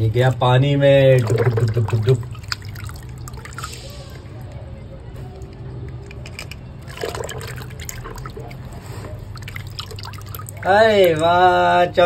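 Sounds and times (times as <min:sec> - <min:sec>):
water sloshing and dripping: 0:00.2 - 0:04.6, 0:06.2 - 0:11.4.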